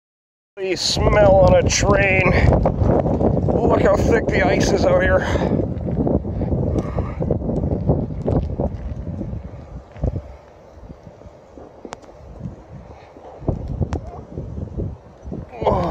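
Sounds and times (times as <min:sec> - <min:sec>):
wind buffeting microphone: 0:00.6 - 0:15.9.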